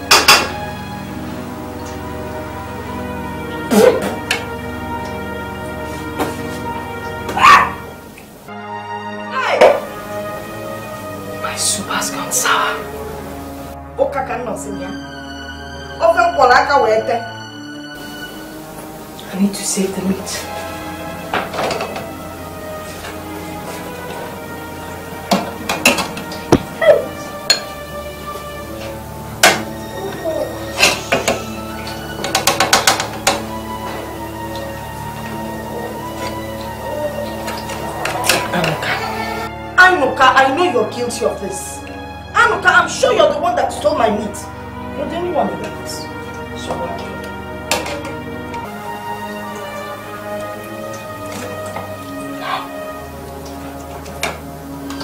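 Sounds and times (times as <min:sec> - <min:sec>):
film music with sustained tones: 0:00.0 - 0:55.0
woman choking cough: 0:03.7 - 0:04.2.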